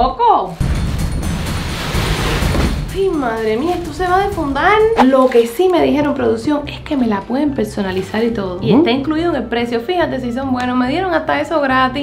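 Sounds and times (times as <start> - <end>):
package dragged out of cardboard box: 1.6 - 2.8.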